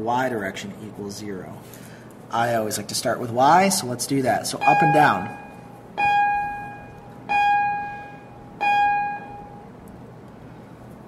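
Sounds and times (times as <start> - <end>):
bell-like electronic chime: 4.6 - 9.6.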